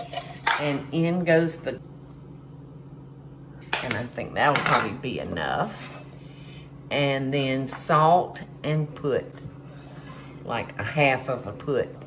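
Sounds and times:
low steady hum: 0.0s - 12.0s
woman speaking: 0.4s - 1.8s, 3.8s - 6.0s, 6.9s - 9.5s, 10.4s - 12.0s.

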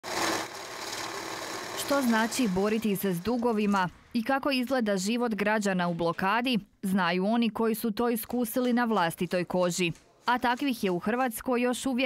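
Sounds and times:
banknote counting machine whirring: 0.0s - 4.0s.

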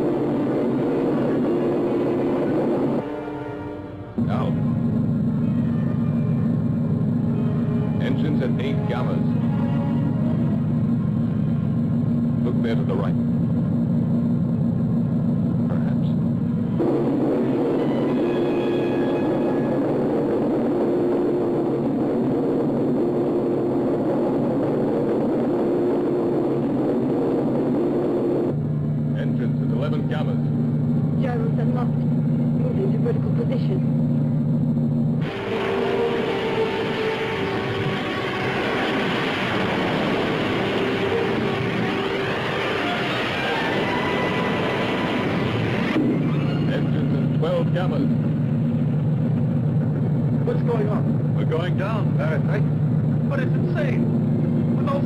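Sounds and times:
electronic spaceship engine hum: 0.0s - 55.0s.

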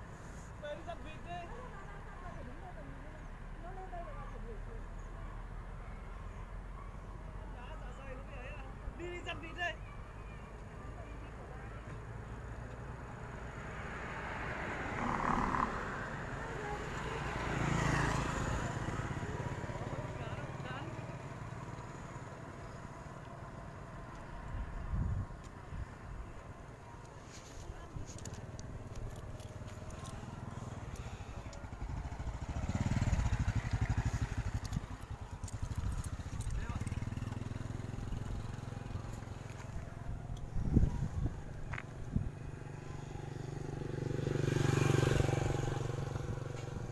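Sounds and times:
low rumble of traffic: 0.0s - 46.9s
small motorbike passing: 0.0s - 46.9s
small motorcycle engine running: 28.9s - 46.9s.

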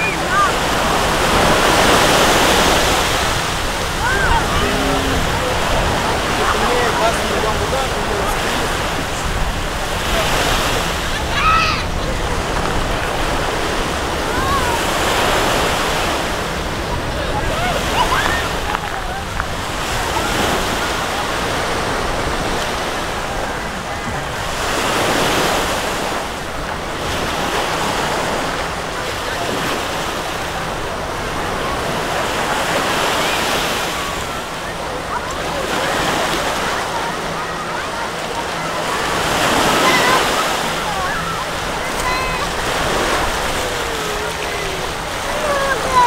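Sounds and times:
wind buffeting microphone: 0.0s - 33.3s
faint voices of people: 0.0s - 46.0s
small waves washing on sand: 0.0s - 46.0s.

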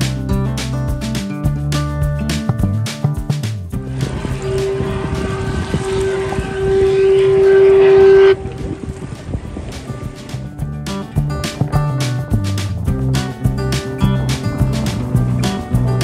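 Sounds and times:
wind: 0.0s - 16.0s
water noise: 3.7s - 16.0s
steamer whistle blast: 4.1s - 8.9s.

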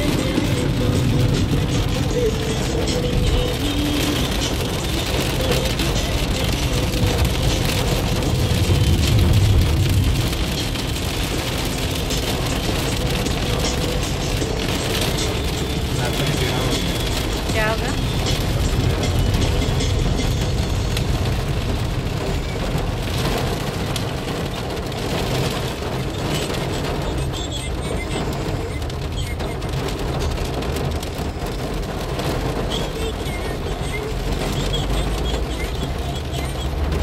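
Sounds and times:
heavy rain on car roof: 0.0s - 37.0s
road noise inside car: 0.0s - 37.0s.

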